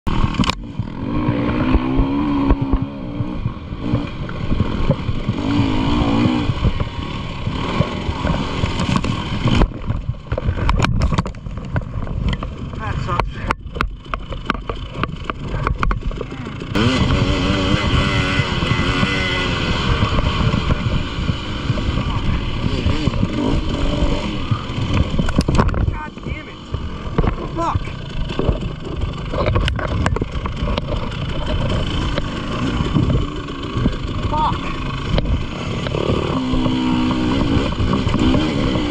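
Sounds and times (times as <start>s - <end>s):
sharp clicks and knocks: 0.1s - 5.5s, 6.1s - 17.2s, 18.6s - 34.3s, 35.0s - 38.9s
dirt bike engine revving: 0.1s - 10.7s, 11.5s - 38.9s
wind on camera: 0.1s - 38.9s
camera rattle: 7.6s - 16.8s, 21.7s - 25.9s, 26.6s - 38.5s.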